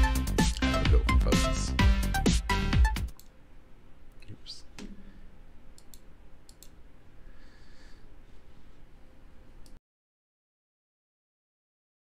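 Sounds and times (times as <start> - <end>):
computer mouse clicking: 5.8 - 6.8.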